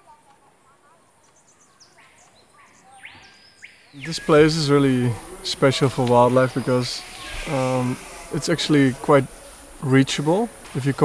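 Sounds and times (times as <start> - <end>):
soft background hiss: 3.6 - 11.0
whistled animal calls: 6.6 - 8.4.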